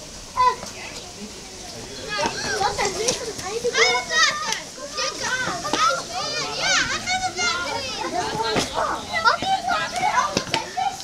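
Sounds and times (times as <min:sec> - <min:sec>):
children chattering and calling out: 0:00.0 - 0:11.0.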